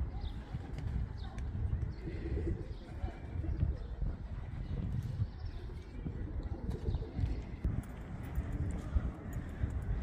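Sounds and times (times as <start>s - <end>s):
footsteps on cobblestones: 0.0s - 10.0s.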